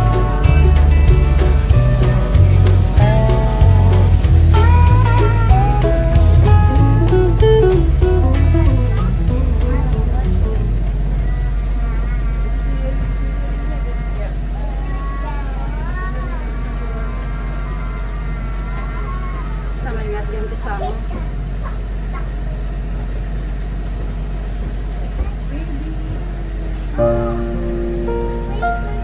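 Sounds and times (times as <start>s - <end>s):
music: 0.0s - 11.1s, 27.0s - 29.0s
voices: 0.0s - 23.7s
ferry engine droning: 0.0s - 29.0s.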